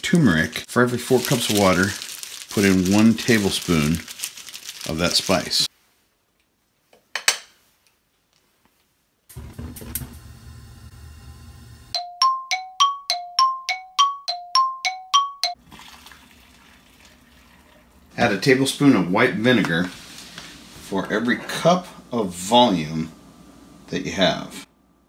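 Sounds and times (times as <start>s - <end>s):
low hum: 9.3s - 12.0s
two-note chime: 12.0s - 15.6s.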